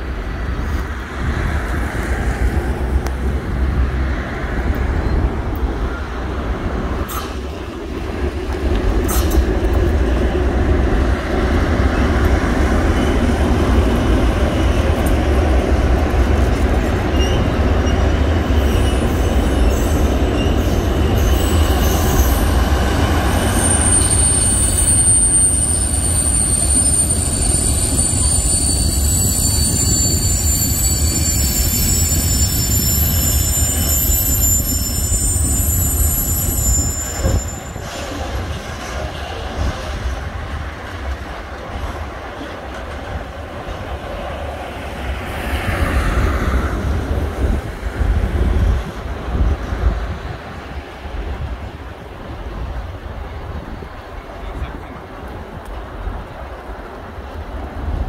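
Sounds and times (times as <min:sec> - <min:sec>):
freight train rumbling past: 0:00.0 - 0:58.0
high-pitched wheel squeal: 0:17.1 - 0:38.2.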